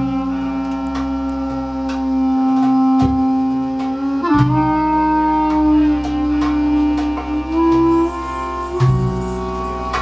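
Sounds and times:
clarinet sustained note: 0:00.0 - 0:10.0
fretless electric bass line: 0:00.0 - 0:10.0
hand drum strikes: 0:00.7 - 0:10.0.

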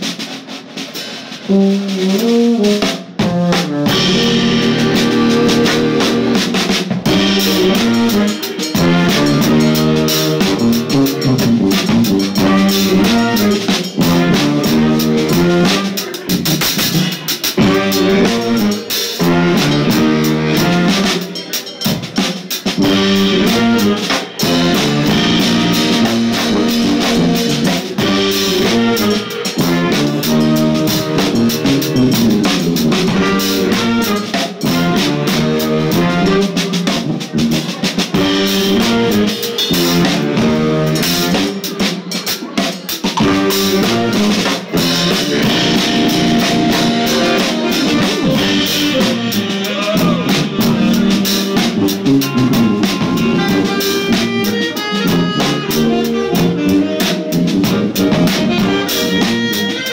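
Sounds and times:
drum kit: 0:00.0 - 0:59.9
sousaphone bass line: 0:03.2 - 0:21.2, 0:22.8 - 0:41.7, 0:43.1 - 0:59.8.

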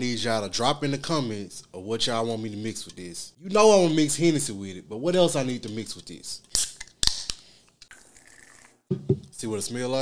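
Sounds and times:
soda can opening snap: 0:06.5 - 0:07.4.

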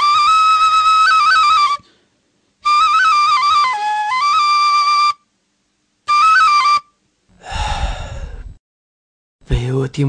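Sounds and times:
man's breathy gasp: 0:07.4 - 0:08.6.

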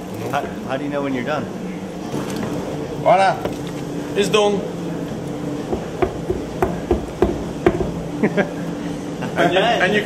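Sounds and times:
machine hum: 0:00.0 - 0:10.0
hose knocking on wooden vat: 0:05.7 - 0:08.0.

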